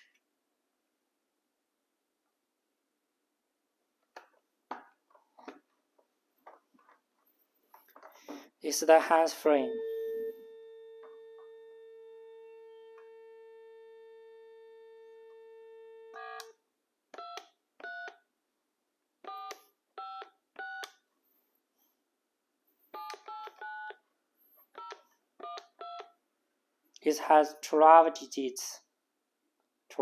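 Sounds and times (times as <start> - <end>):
telephone dial tone: 16.0 - 16.6.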